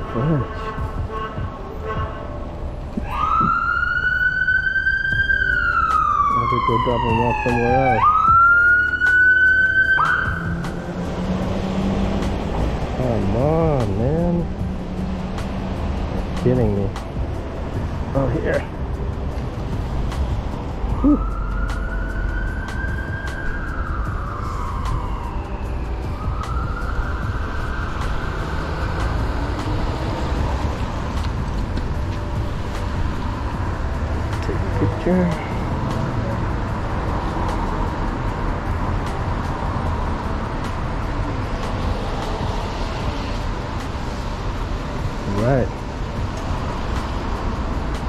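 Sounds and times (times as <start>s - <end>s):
low rumble of street traffic: 0.0s - 48.0s
emergency vehicle siren wailing: 3.0s - 13.5s, 20.9s - 32.3s.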